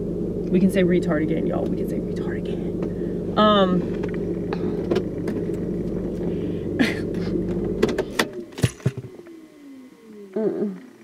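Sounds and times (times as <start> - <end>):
car running hum: 0.0 - 11.0.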